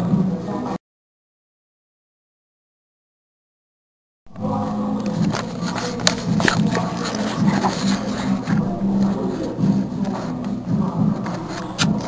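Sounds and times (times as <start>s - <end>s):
muffled background music: 0.0s - 0.8s, 4.3s - 12.0s.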